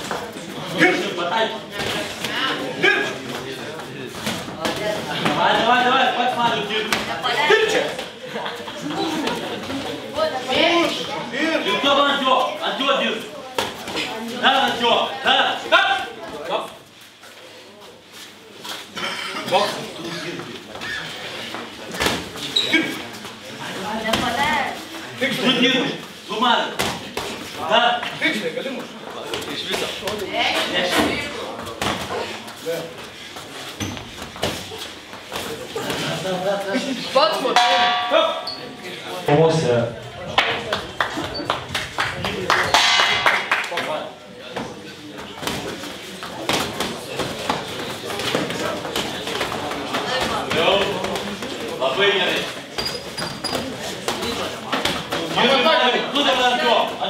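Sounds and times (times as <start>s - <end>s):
people's voices: 0.0s - 57.0s
boxing bell ringing: 37.6s - 38.9s.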